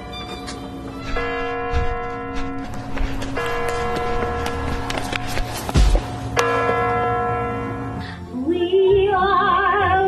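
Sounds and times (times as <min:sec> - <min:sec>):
large bell tolling: 0:01.0 - 0:08.1.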